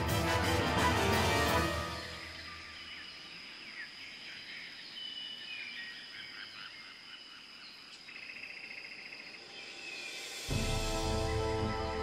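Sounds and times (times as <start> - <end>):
birds chirping: 1.6 - 12.0
high insect drone: 1.8 - 12.0.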